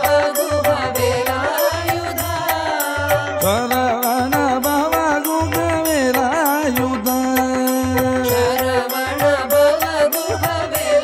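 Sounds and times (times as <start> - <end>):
devotional melody: 0.0 - 11.0.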